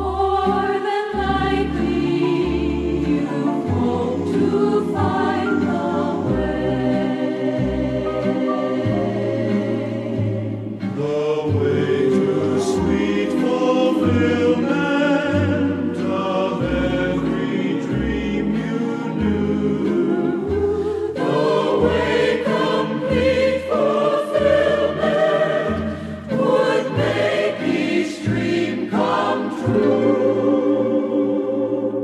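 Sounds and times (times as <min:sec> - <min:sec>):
choir singing with orchestra: 0:00.0 - 0:32.0.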